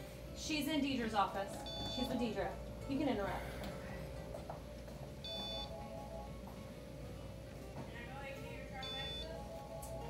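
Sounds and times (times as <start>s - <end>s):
faint background music: 0.0s - 10.0s
short electronic beep: 5.3s - 5.7s.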